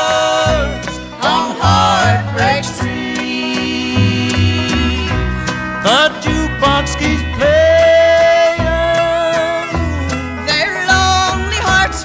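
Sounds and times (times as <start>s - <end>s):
plucked-string backing: 0.0s - 12.0s
sliding lead melody: 0.0s - 12.0s.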